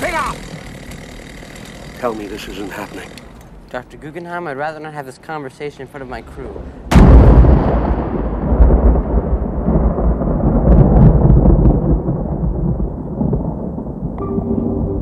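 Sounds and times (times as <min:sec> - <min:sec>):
sustained musical notes: 0:14.2 - 0:15.0.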